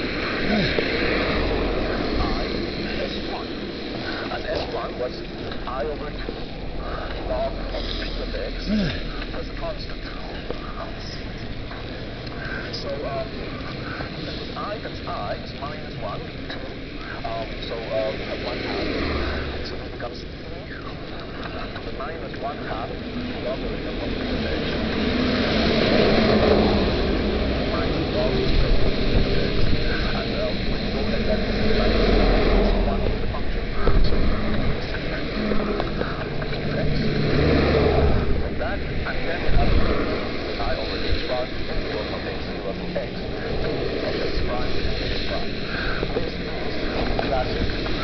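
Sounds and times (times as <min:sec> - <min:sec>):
traffic on wet road: 0:00.0 - 0:48.0
wind rumbling on microphone: 0:00.0 - 0:48.0.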